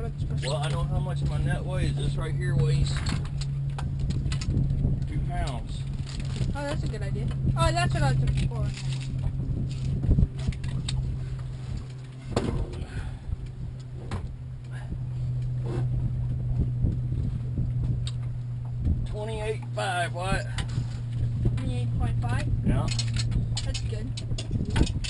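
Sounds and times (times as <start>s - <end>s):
low motor hum: 0.0s - 25.0s.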